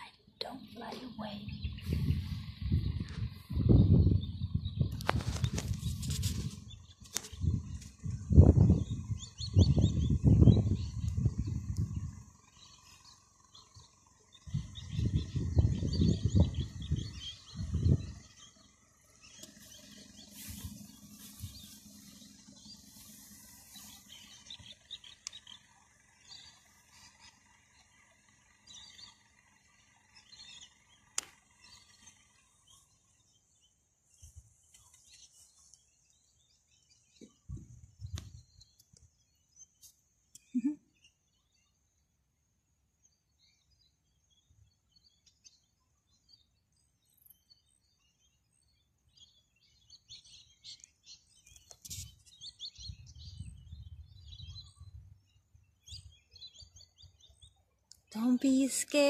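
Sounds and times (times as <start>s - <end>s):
low rumbling on microphone: 0.0s - 25.6s, 52.7s - 57.2s
small birds chirping: 0.0s - 59.0s.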